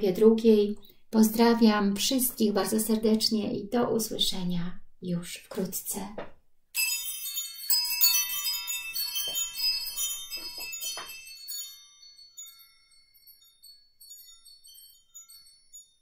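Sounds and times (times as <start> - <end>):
chimes tinkling: 6.8 - 16.0.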